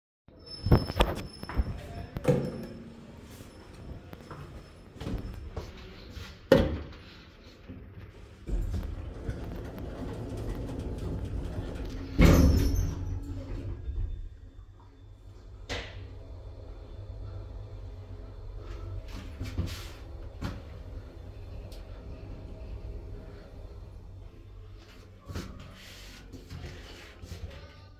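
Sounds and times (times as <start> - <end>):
lift doors shutting with a thud: 8.4 - 14.3
lift drive hum: 8.4 - 25.0.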